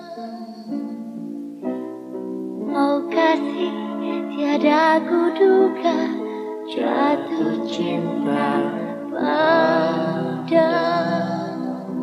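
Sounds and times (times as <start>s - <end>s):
slow pop ballad music: 0.0s - 12.0s.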